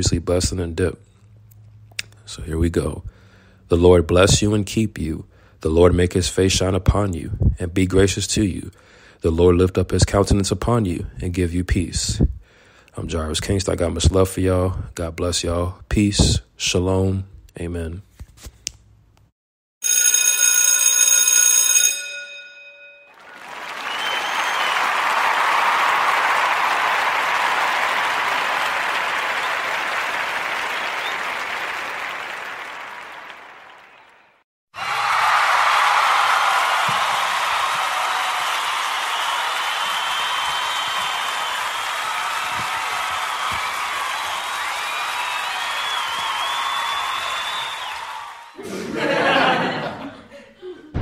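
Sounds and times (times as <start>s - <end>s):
crowd applause: 23.1s - 50.2s.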